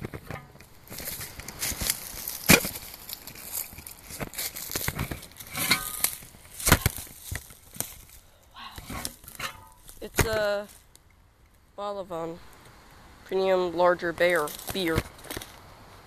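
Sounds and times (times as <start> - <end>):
phone rustling against cloth: 0.0 - 10.9.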